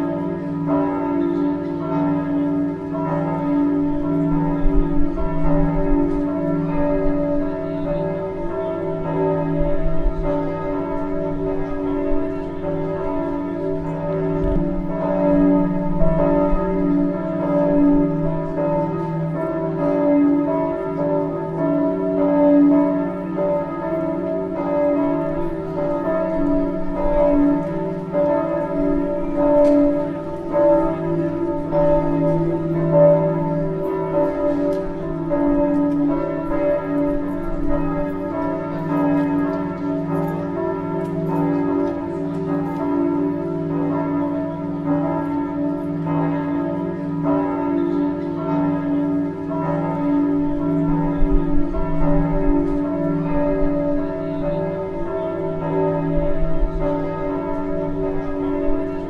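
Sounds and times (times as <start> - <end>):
church bells ringing: 0.0 - 59.0.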